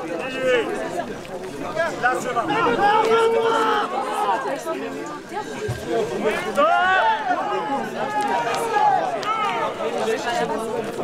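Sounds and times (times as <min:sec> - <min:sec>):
crowd noise: 0:00.0 - 0:11.0
people talking and calling out: 0:00.0 - 0:11.0.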